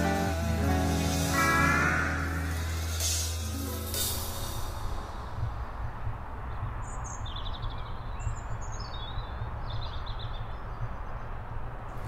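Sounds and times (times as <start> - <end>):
low rumble: 1.3 - 12.0
bird chirps and trills: 6.4 - 11.6.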